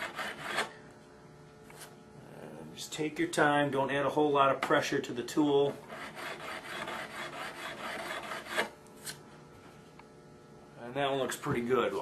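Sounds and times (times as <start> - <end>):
file rasping on metal fret: 0.0 - 0.8, 5.8 - 8.8.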